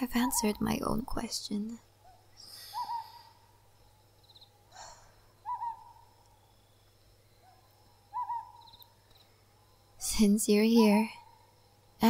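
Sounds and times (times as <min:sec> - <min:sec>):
owl hooting: 0:02.0 - 0:03.6, 0:04.3 - 0:06.8, 0:07.4 - 0:08.9.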